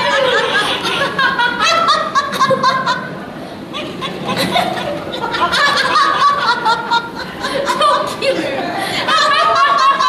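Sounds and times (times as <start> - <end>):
women laughing: 0.0 - 10.0.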